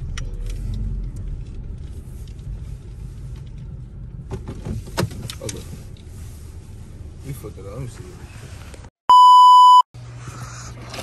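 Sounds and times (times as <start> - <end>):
car engine and tyres rumbling: 0.0 - 9.0.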